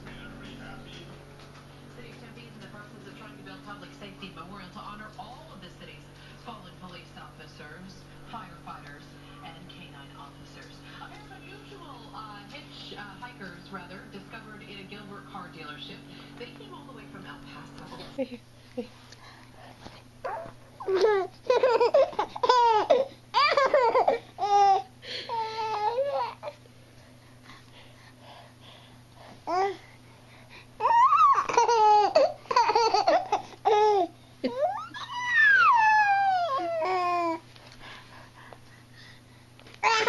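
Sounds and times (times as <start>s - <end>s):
baby giggling and babbling: 20.3s - 26.5s, 30.8s - 37.4s.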